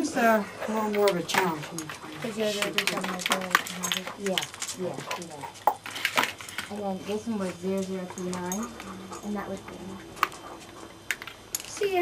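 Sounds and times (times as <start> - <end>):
people talking: 0.0 - 5.6, 6.7 - 10.1, 11.6 - 12.0.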